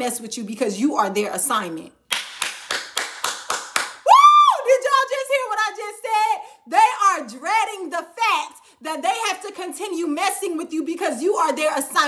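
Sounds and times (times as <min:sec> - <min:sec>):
hands clapping quickly: 0:02.1 - 0:04.1
woman squealing: 0:04.1 - 0:04.7.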